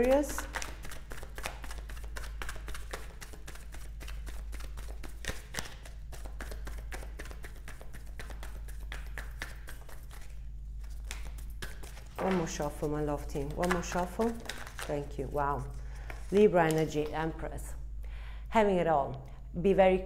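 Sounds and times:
cards being shuffled by hand: 0.0s - 17.4s.

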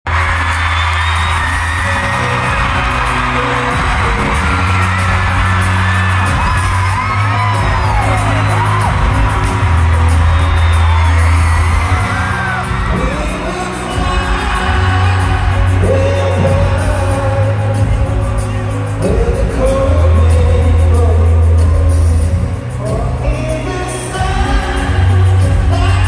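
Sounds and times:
fans screaming and whooping: 0.1s - 26.0s
live band music over a pa: 0.1s - 26.0s.

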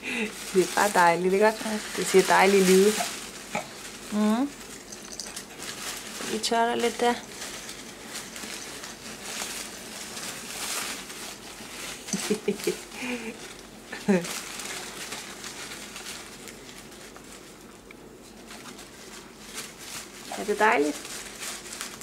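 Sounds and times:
paper rustling and crinkling: 0.1s - 22.0s
baby cooing: 3.0s - 3.8s.

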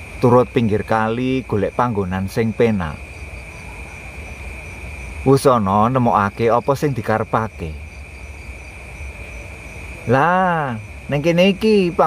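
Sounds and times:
crickets trilling: 0.0s - 12.0s
low steady rumble: 0.0s - 12.0s.

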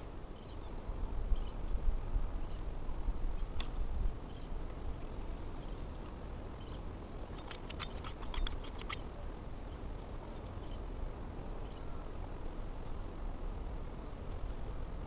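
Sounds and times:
low outdoor rumble: 0.0s - 15.0s
sharp clicks: 7.3s - 9.0s.

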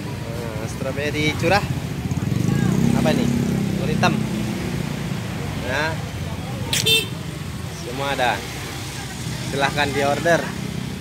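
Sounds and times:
street traffic rumble: 0.0s - 11.0s
vehicle horn toot: 6.8s - 7.2s.

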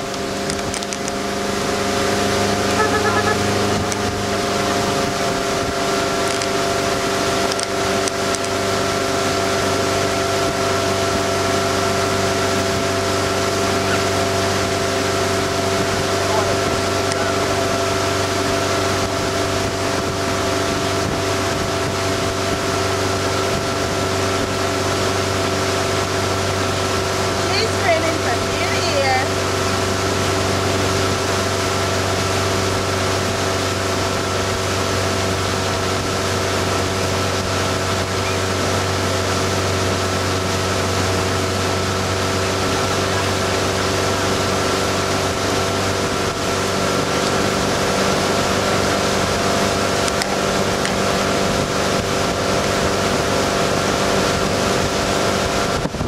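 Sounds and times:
boat motor droning: 0.0s - 56.0s
rushing water: 0.0s - 56.0s
wind: 0.0s - 56.0s.

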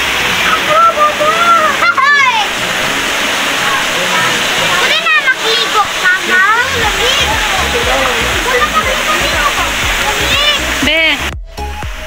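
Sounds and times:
waterfall rushing into a pool: 0.0s - 12.0s
faint voices: 0.4s - 11.2s.

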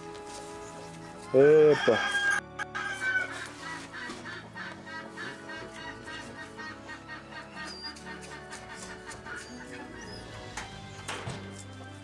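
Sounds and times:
background music: 0.0s - 12.0s
chickens clucking: 3.2s - 11.1s.

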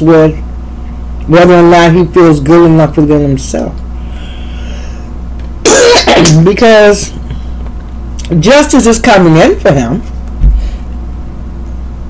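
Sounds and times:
steady low hum: 0.0s - 12.0s
person coughing: 5.6s - 6.4s.

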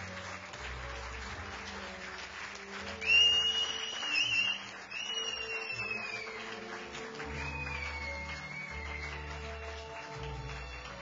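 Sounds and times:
audience applauding: 0.0s - 11.0s
long whistles: 3.0s - 6.4s, 7.4s - 9.1s.

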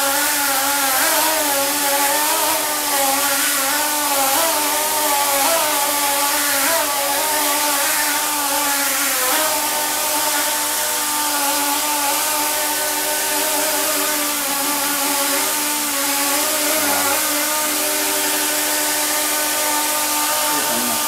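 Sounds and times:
propellers whirring: 8.9s - 21.0s.

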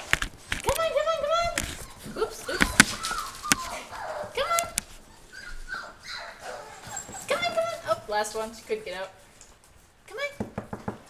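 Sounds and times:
puppies whining: 0.8s - 8.2s.

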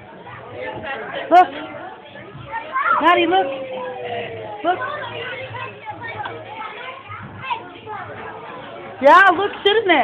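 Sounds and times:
faint voices talking: 0.0s - 10.0s
young children playing: 0.0s - 10.0s.

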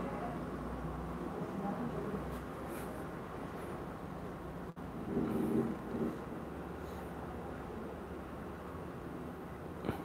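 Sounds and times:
faint hiss and rumble: 0.0s - 10.0s.

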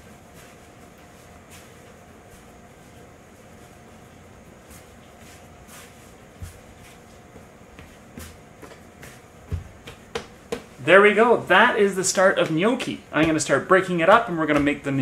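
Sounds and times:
hands kneading dough: 0.0s - 15.0s.

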